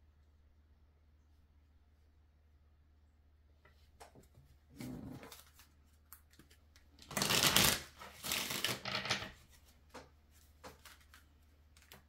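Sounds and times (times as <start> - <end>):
cards being shuffled by hand: 4.0 - 12.0.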